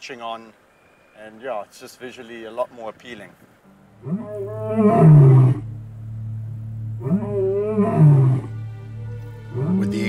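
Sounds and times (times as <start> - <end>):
steady low hum: 3.6 - 10.0
lion roaring: 4.0 - 5.7, 6.9 - 8.6, 9.5 - 10.0.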